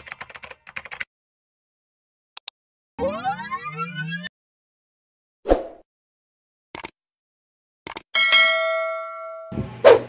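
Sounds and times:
notification bell ding: 8.2 - 9.6.

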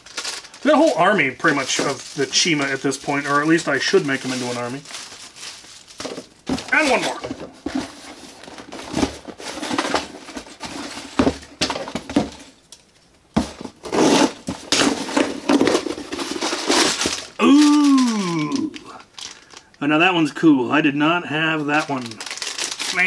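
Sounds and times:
packaging rustling and crinkling: 0.0 - 19.8, 21.5 - 23.0.

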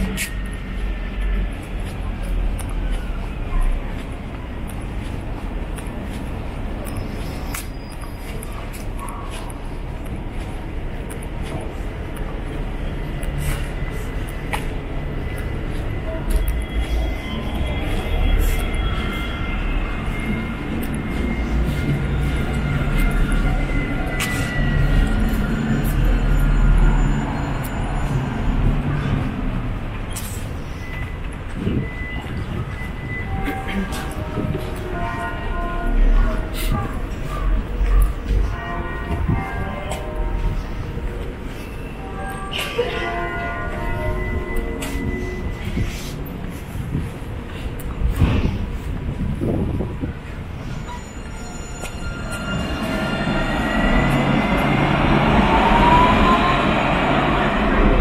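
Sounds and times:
tram wheels rumbling: 0.0 - 58.0.

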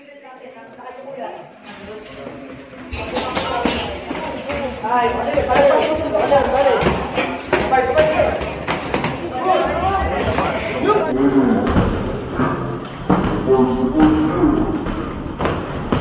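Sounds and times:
people shouting: 5.1 - 11.2.

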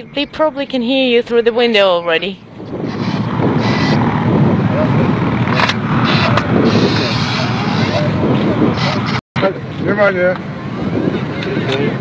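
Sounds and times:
engine noise: 0.0 - 12.0
wind noise: 0.0 - 12.0
faint voices: 4.6 - 12.0.

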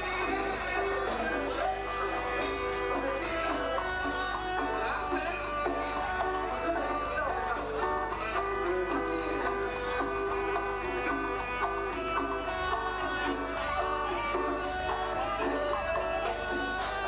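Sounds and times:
guitar: 0.0 - 17.0
latin dance band playing: 0.0 - 17.0
percussion: 0.0 - 17.0.

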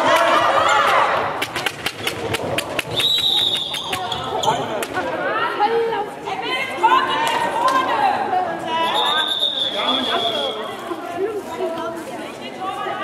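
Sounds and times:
referee whistle blast: 3.0 - 4.0, 8.8 - 10.6.

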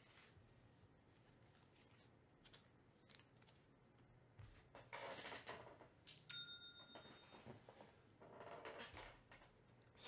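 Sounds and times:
faint rustling and handling: 0.0 - 4.7
faint high ringing tone: 6.2 - 7.6.

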